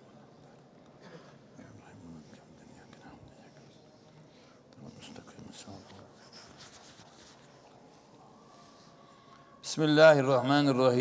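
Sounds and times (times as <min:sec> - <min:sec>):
book pages rustling: 0:05.8 - 0:07.8.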